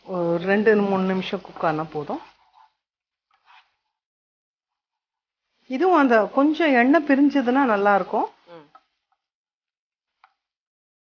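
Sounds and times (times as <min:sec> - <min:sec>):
woman speaking: 0:00.1 - 0:02.3, 0:05.7 - 0:08.8.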